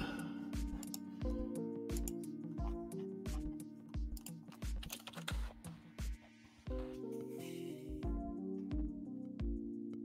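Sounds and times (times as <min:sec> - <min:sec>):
background music with bass beat: 0:00.0 - 0:09.7.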